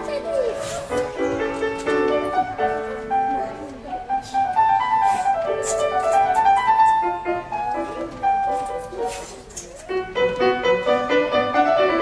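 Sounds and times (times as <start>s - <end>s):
grand piano playing classical piece: 0.0s - 12.0s.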